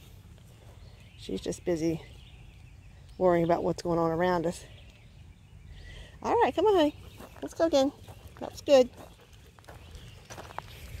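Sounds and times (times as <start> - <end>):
footsteps crunching on wood chips: 7.1 - 11.0.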